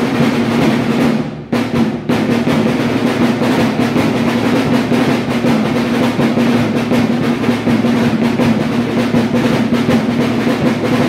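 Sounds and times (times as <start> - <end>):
rapid drum roll: 0.0 - 11.0.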